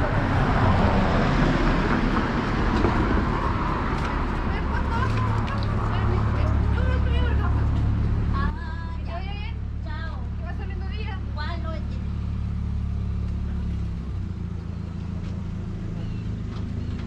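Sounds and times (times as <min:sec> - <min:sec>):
vehicle engine idling: 0:00.0 - 0:17.0
passersby talking: 0:03.9 - 0:12.3.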